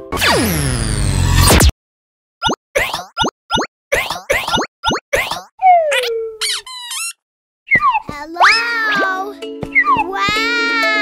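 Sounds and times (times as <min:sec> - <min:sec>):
cartoon pops: 0:02.4 - 0:07.0
springy chirps: 0:02.4 - 0:08.1.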